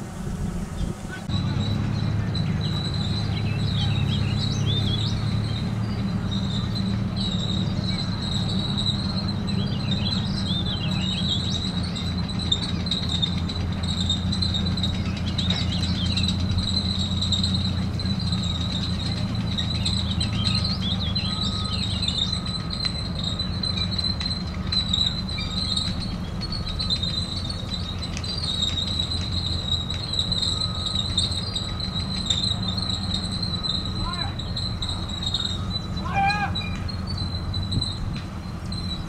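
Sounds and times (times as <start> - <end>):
steel tracks clanking: 0.0 - 39.0
steel tracks squealing: 0.0 - 39.0
tank engine droning: 0.0 - 39.0.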